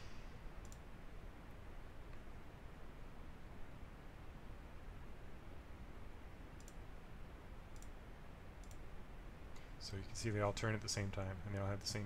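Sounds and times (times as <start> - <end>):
low steady hum: 0.0 - 12.0
computer mouse clicks: 0.6 - 0.9, 6.6 - 6.8, 7.7 - 8.0, 8.6 - 8.8.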